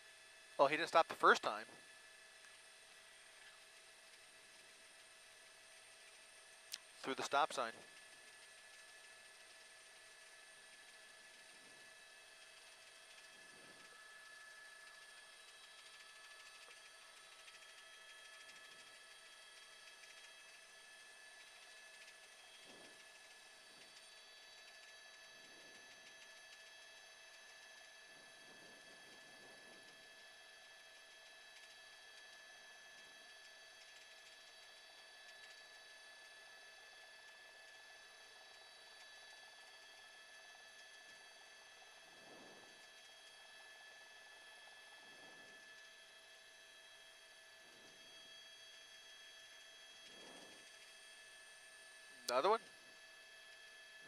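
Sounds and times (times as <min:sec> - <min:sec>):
faint electronic hum: 0:00.0 - 0:54.0.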